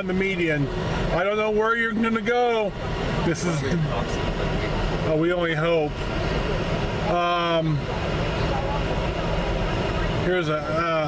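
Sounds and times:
car cabin engine and road noise: 0.0 - 11.0.

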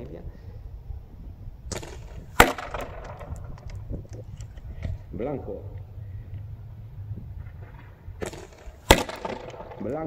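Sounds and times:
airsoft rifle shot: 1.7 - 3.7, 8.2 - 10.0.

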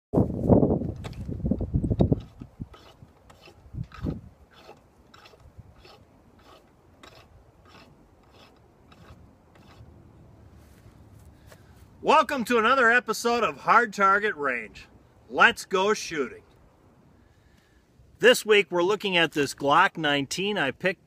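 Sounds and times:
rope rubbing through pulley: 2.0 - 9.9.

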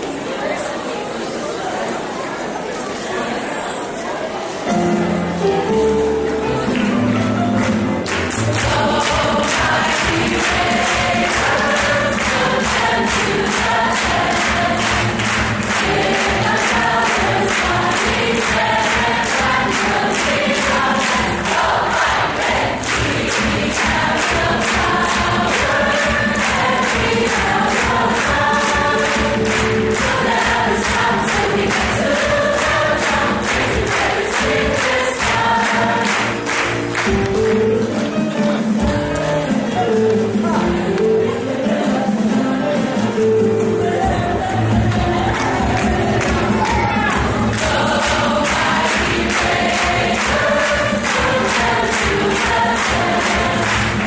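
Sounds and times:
choir singing: 7.7 - 54.0.

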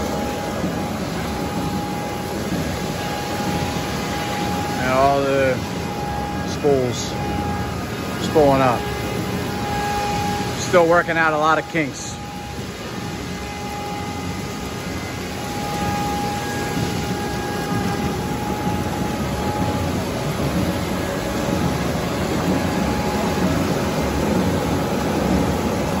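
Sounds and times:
faint thin machine whine: 0.0 - 26.0
paper slitting machine drone: 0.0 - 26.0.

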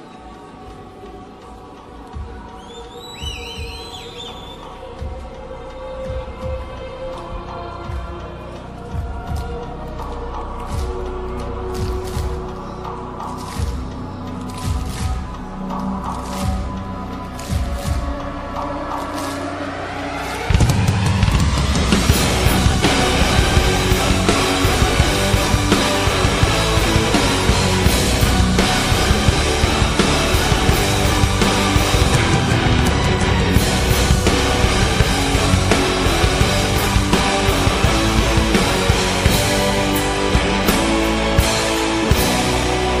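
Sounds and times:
warbling whistle: 2.6 - 4.8
heavy distorted guitars: 16.0 - 43.0
rising sweep: 18.3 - 43.0
symphonic metal band playing: 19.1 - 43.0
pounding drums: 20.1 - 43.0.

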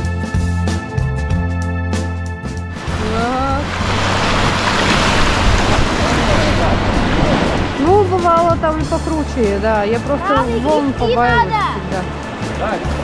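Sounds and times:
rushing whitewater: 2.7 - 13.0.

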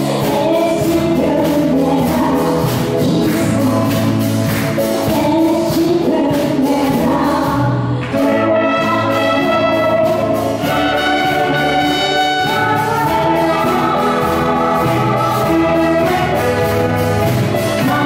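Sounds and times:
person singing: 0.0 - 4.3, 5.0 - 18.0
wind band playing: 8.2 - 18.0.

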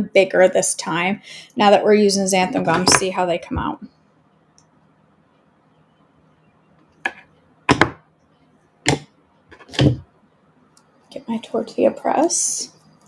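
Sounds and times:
knife knocking on countertop: 7.7 - 8.0.

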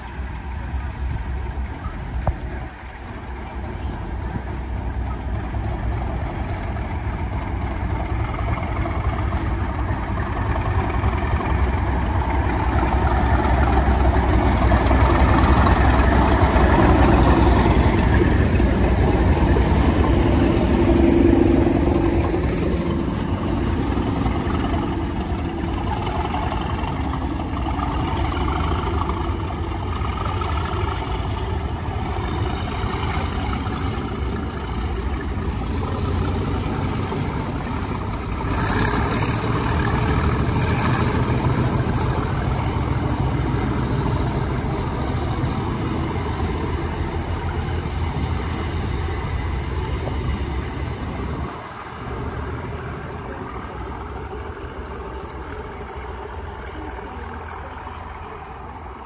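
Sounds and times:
diesel locomotive engine: 0.0 - 59.0
wheels rumbling on rails: 0.0 - 59.0.

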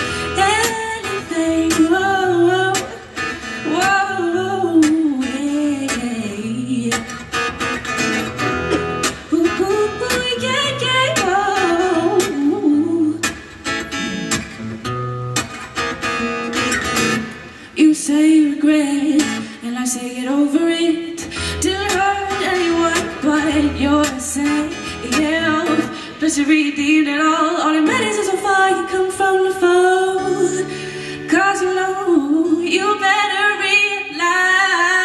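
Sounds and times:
woman singing pop song: 0.0 - 7.4, 9.0 - 14.0, 17.6 - 35.0
acoustic guitar strumming: 0.0 - 33.3.

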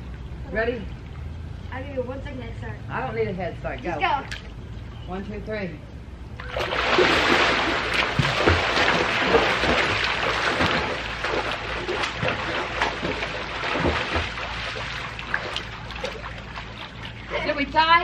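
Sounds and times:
swimmers splashing in pool: 6.4 - 17.7.

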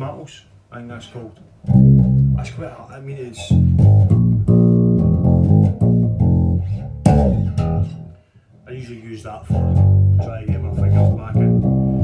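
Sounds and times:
bass guitar riff: 1.6 - 2.7, 3.4 - 8.2, 9.4 - 12.0.

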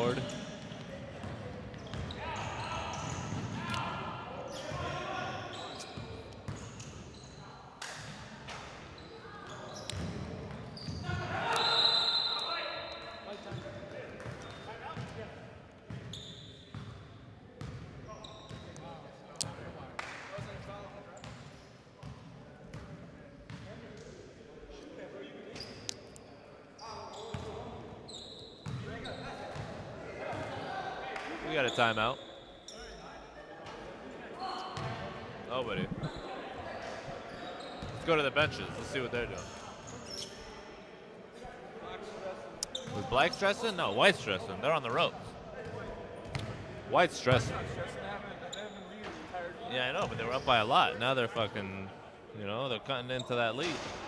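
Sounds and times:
voices echoing in hall: 0.0 - 54.0.

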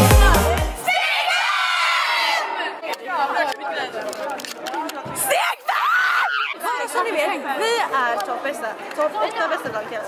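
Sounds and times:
girls cheering: 0.1 - 2.8, 5.2 - 6.9.

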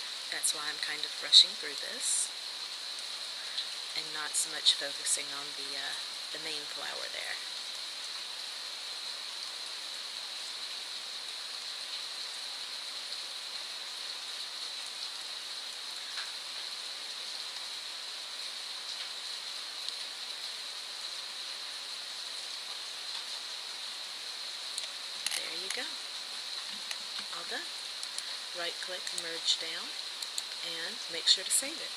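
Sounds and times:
electronic microphone hiss: 0.0 - 31.9
faint clicks: 28.0 - 28.4, 30.2 - 30.6.

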